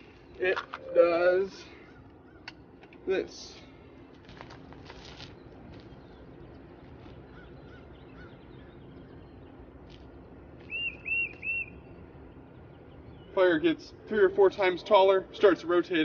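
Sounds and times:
bird chirping: 5.3s - 14.1s.

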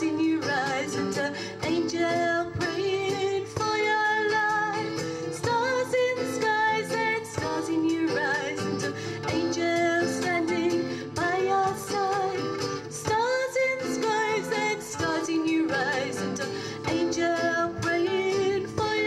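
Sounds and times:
strummed acoustic guitars: 0.0s - 19.0s
woman singing: 0.0s - 19.0s.

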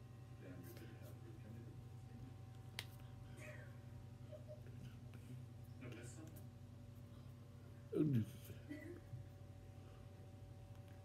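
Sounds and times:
faint steady room hum: 0.0s - 11.0s.

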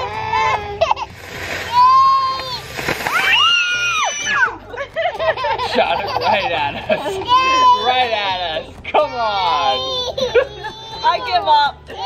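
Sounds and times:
firework pops: 1.2s - 4.3s
women and children shrieking: 1.7s - 4.6s.

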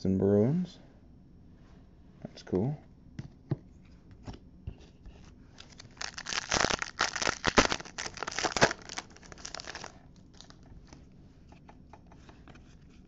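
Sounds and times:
foil wrapper crinkling and tearing: 5.6s - 10.6s.

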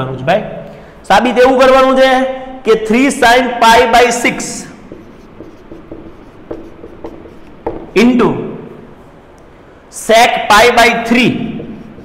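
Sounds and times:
marker writing on whiteboard: 4.1s - 8.3s, 11.1s - 12.0s
person talking: 7.7s - 8.8s.

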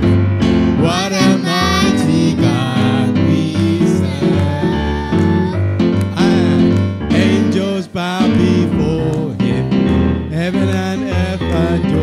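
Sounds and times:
keyboard accompaniment: 0.0s - 12.0s
people singing into microphones: 0.8s - 12.0s.

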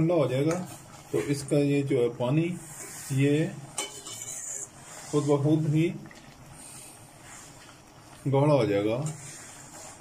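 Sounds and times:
spoon stirring in steel pot: 0.3s - 10.0s.

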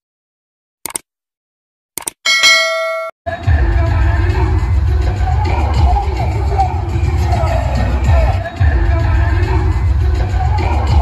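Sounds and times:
bell chime: 2.3s - 3.2s
loud crowd noise: 3.3s - 11.0s.

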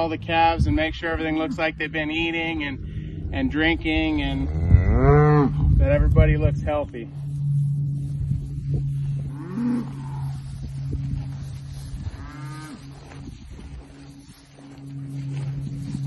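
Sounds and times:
steady low hum: 0.0s - 16.0s
cow mooing: 4.3s - 5.7s, 9.2s - 10.6s, 12.0s - 13.0s.

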